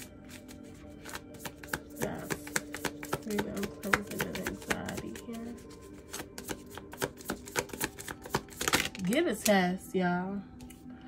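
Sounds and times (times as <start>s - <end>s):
faint background music: 0.0s - 11.0s
cards being shuffled: 0.2s - 9.2s.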